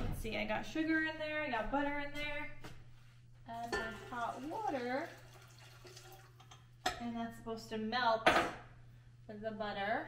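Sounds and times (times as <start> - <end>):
water pouring into a bowl: 3.8 - 6.5.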